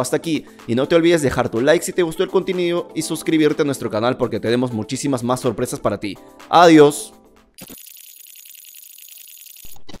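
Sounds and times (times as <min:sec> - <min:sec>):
fast crackling flicker: 0:07.6 - 0:10.0
high-pitched electronic hiss: 0:07.6 - 0:10.0.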